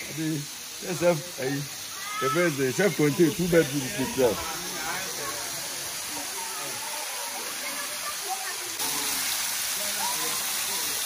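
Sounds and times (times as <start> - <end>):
waterfall spraying onto rocks: 0.0 - 11.0.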